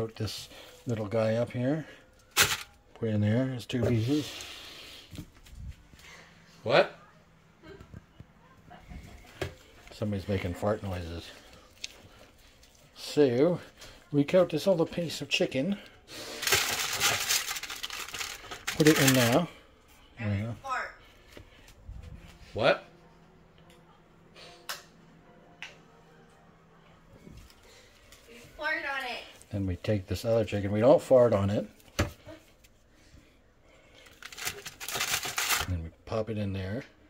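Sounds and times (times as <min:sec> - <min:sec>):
dry rustling and crinkling: 0:16.2 - 0:19.5, 0:34.0 - 0:35.7.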